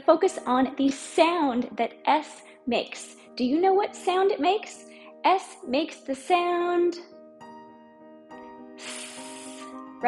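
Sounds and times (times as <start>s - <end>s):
soft background music: 0.0s - 10.0s
woman hissing s sound: 8.8s - 9.8s.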